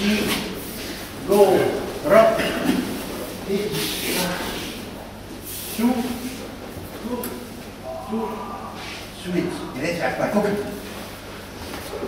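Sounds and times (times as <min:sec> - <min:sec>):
men's voices in a large hall: 0:00.0 - 0:11.5.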